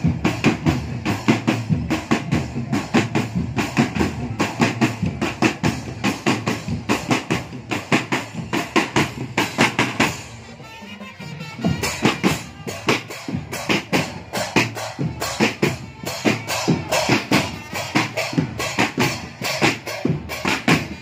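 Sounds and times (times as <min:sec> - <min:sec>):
marching snare and bass drums: 0:00.0 - 0:21.0.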